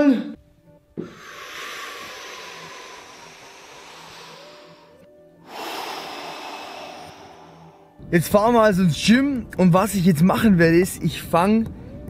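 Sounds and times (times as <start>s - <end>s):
man breathing deeply: 1.0s - 8.1s.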